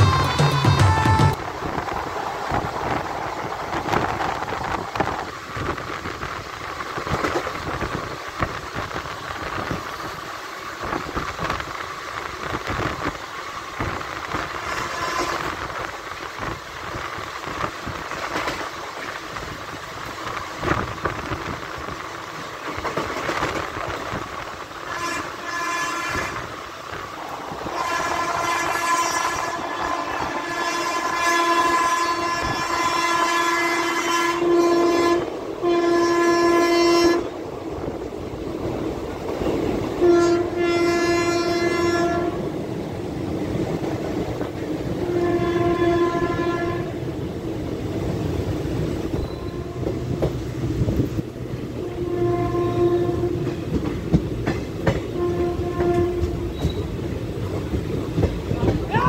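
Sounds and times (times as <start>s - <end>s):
train coaches rumbling on rails: 0.0s - 59.0s
locomotive air horn blasts: 14.6s - 15.6s, 24.8s - 26.5s, 27.8s - 37.3s, 40.0s - 42.5s, 45.0s - 47.0s, 49.3s - 50.0s, 51.8s - 53.5s, 55.1s - 56.6s.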